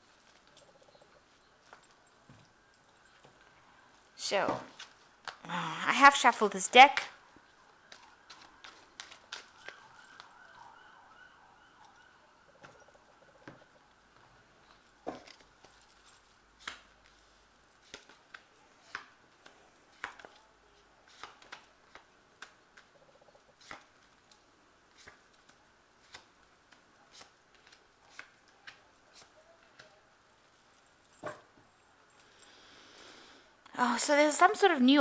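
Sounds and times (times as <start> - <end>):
faint wavering siren: 7.1 - 14.2.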